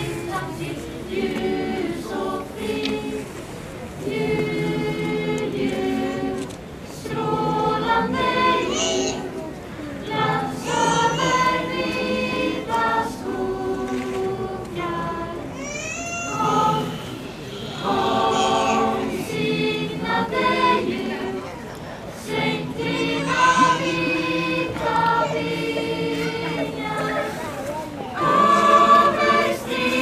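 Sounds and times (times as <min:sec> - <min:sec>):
young choir singing: 0:00.0 - 0:15.6, 0:16.3 - 0:30.0.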